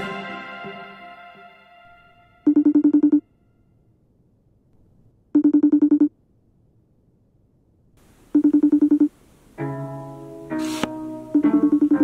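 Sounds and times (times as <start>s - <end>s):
telephone ringing: 2.5s - 3.2s, 5.4s - 6.1s, 8.3s - 9.1s, 11.4s - 12.0s.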